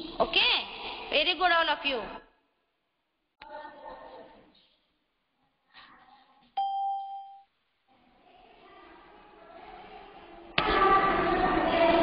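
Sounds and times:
app notification chime: 0:06.6 - 0:07.4.

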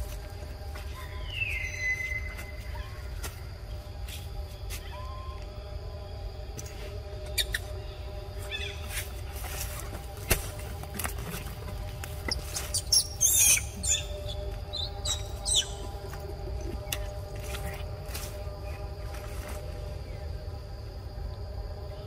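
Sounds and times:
low outdoor background: 0:00.0 - 0:22.0
faint chirps: 0:00.8 - 0:09.6.

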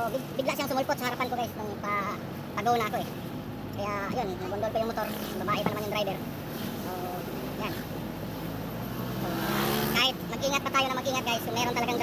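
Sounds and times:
motorcycle passing: 0:02.8 - 0:12.0.

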